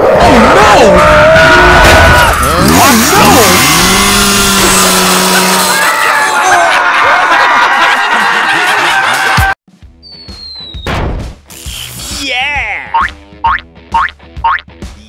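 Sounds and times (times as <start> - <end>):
loud dense cartoon sound: 0.0 - 7.5
falling whistle: 10.0 - 10.9
springy boing sounds: 13.0 - 14.6.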